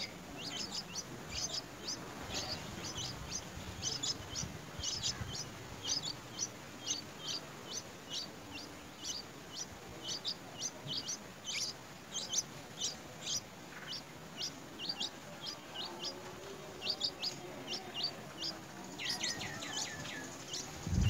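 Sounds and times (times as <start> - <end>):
nestlings cheeping: 0.0 - 21.0.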